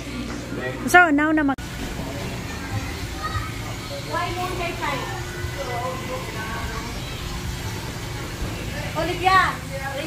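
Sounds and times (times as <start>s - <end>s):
faint indistinct voices: 1.6s - 10.0s.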